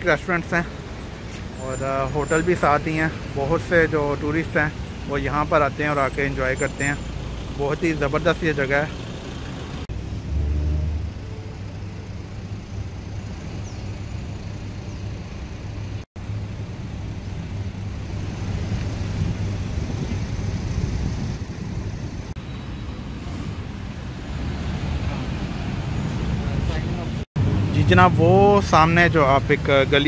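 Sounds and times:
road traffic rumble: 0.0 - 30.0
engine hum: 0.2 - 30.0.

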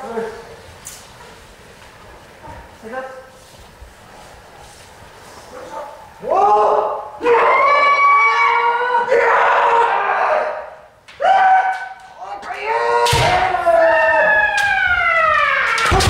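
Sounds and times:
people yelling long shouts: 6.2 - 16.0.

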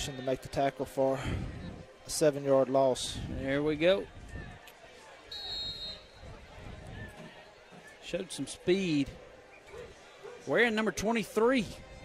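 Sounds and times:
faint crowd and field noise: 0.0 - 12.0
referee's whistle blast: 5.3 - 6.2.

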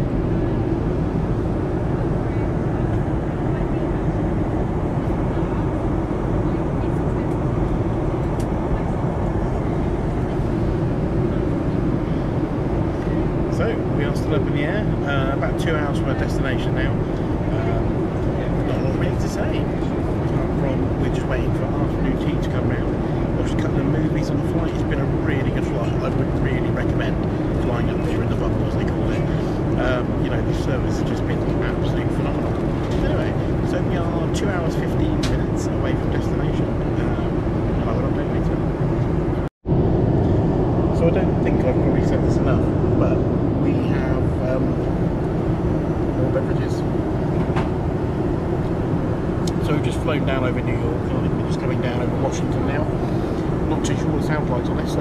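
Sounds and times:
airliner cabin engine noise: 0.0 - 55.0
man talking: 13.0 - 38.7, 40.9 - 44.9, 46.1 - 46.9, 49.5 - 55.0.

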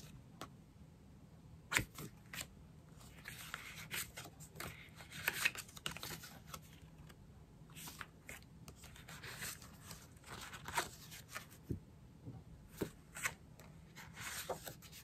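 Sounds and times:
paper rustling and sliding: 12.8 - 15.0.

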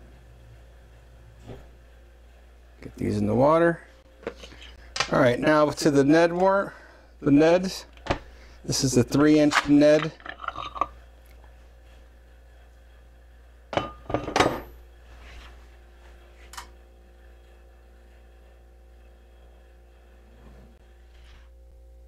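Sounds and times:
metal mold halves clinking: 9.4 - 11.0.

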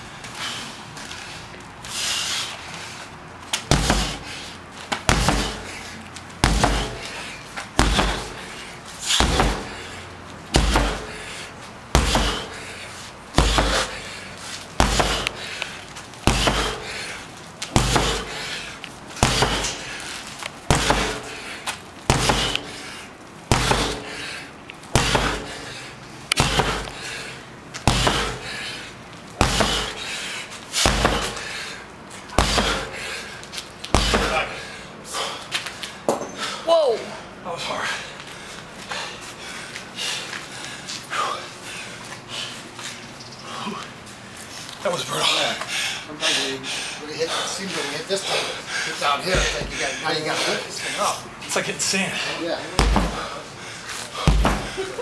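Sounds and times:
sledgehammer thudding on rubber tire: 3.6 - 28.7, 29.4 - 34.7, 49.2 - 49.9, 52.6 - 53.4, 54.1 - 55.0.

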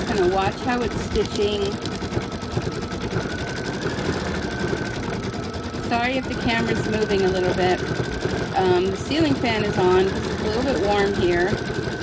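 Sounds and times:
embroidery machine stitching: 0.0 - 12.0.

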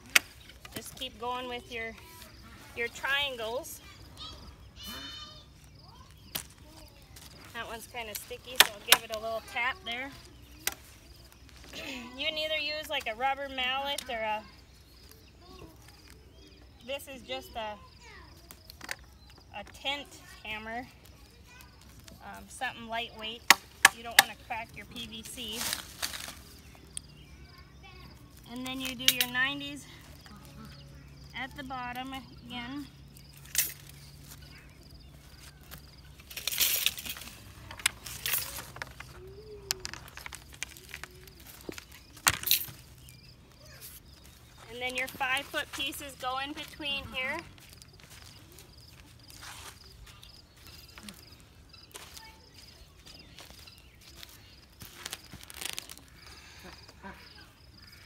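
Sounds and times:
scuffing rustle: 40.1 - 56.2.

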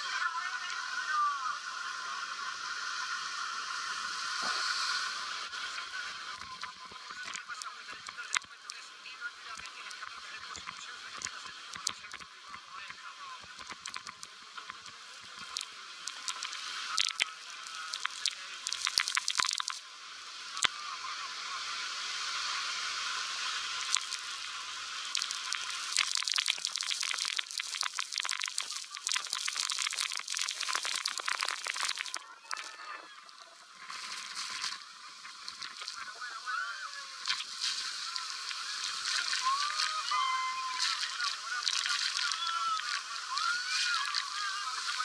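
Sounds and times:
water spray hitting microphone: 13.4 - 20.8, 21.4 - 32.8, 33.7 - 45.0.

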